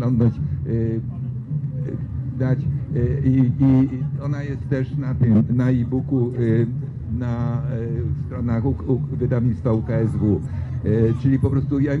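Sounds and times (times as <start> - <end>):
man speaking: 0.0 - 12.0
steady low rumble: 0.0 - 12.0.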